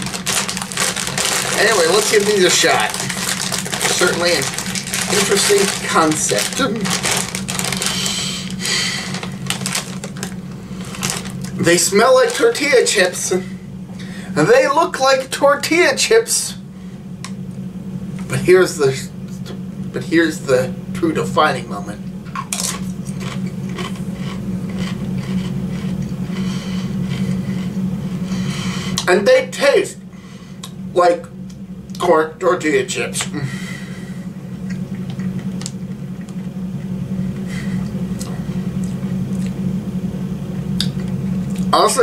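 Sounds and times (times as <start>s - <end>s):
chewing crunches: 0.0s - 11.6s, 22.3s - 27.8s, 34.6s - 39.6s
foil chip bag crinkling: 0.0s - 13.3s.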